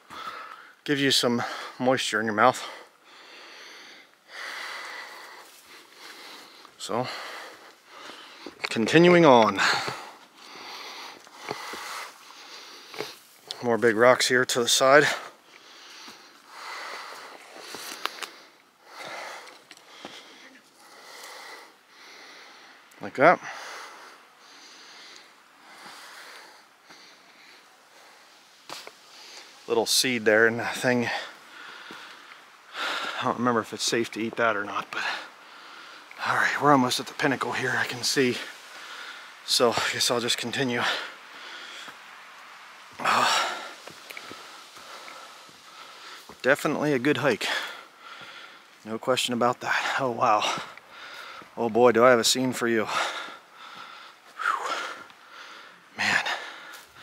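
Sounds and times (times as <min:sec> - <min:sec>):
person breathing hard: 0:00.0 - 0:00.8, 0:02.6 - 0:08.6, 0:09.6 - 0:13.3, 0:15.1 - 0:29.7, 0:31.0 - 0:33.2, 0:35.0 - 0:36.2, 0:38.4 - 0:39.5, 0:40.8 - 0:42.2, 0:43.0 - 0:46.4, 0:47.4 - 0:48.8, 0:49.7 - 0:51.6, 0:52.8 - 0:57.0
soft footsteps: 0:43.7 - 0:47.4.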